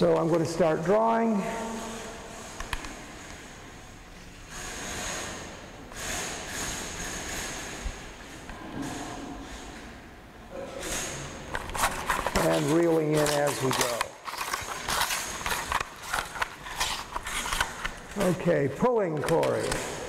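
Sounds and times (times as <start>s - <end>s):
fish tape scraping through conduit: 1.7s - 9.7s, 10.8s - 18.4s.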